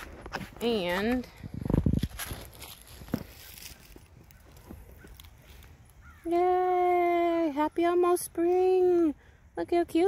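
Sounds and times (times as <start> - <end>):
footsteps crunching dry leaves: 0.0 - 6.2.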